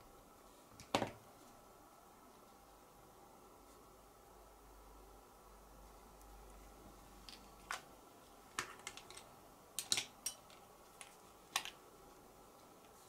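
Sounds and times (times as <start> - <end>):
plastic art tools clicking: 8.5 - 11.8.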